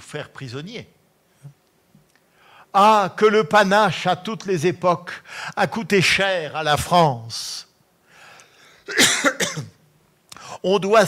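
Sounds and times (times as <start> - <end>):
faint breath: 2.3 - 2.7, 8.0 - 8.9
man coughing: 8.8 - 9.8.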